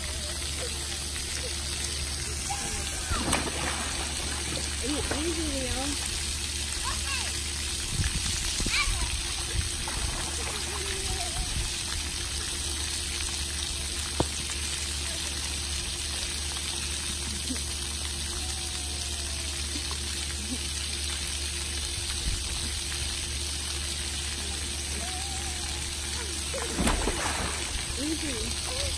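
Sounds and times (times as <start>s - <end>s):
distant children's voices: 0.0s - 6.1s, 6.7s - 7.6s, 8.4s - 12.0s, 24.2s - 28.9s
rushing water from fountains: 0.0s - 28.9s.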